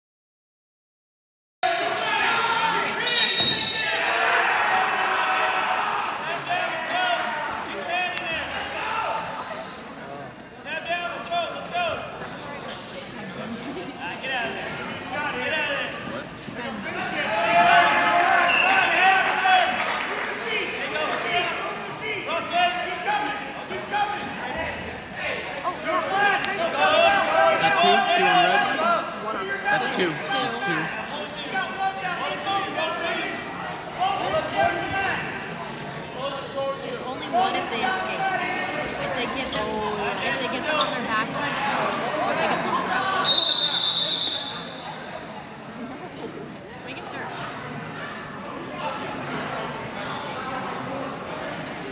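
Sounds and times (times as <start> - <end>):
referee's whistle blast: 3.0 - 4.0, 43.2 - 44.8
spectators calling out: 26.5 - 31.0.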